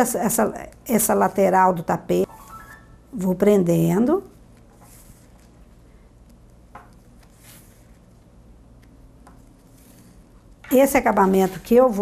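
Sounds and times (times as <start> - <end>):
room hum: 0.0 - 12.0
rustling of thread and canvas: 4.4 - 12.0.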